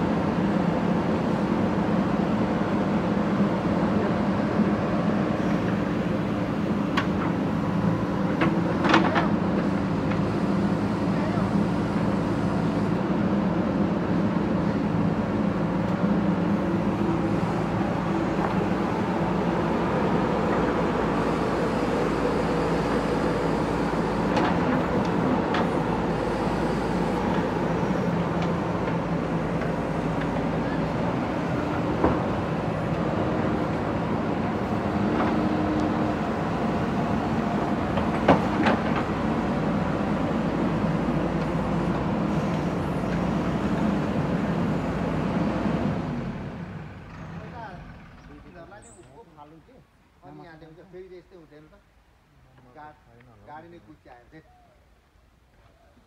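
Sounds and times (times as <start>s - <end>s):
diesel engine running: 0.0s - 48.5s.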